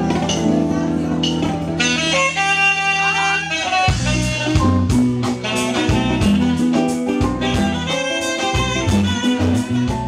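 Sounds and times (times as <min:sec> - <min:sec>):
live band music: 0:00.0 - 0:10.0
saxophone playing: 0:01.5 - 0:10.0.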